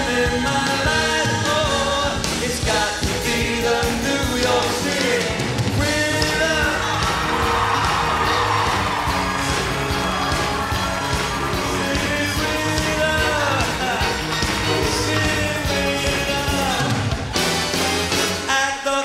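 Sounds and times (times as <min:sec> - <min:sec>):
man singing: 0:00.0 - 0:07.7, 0:11.5 - 0:17.2, 0:18.4 - 0:19.0
live pop band playing: 0:00.0 - 0:19.0.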